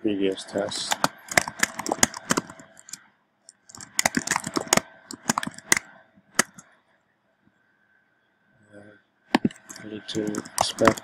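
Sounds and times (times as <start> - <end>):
computer keyboard typing: 0.4 - 6.6, 9.4 - 11.0.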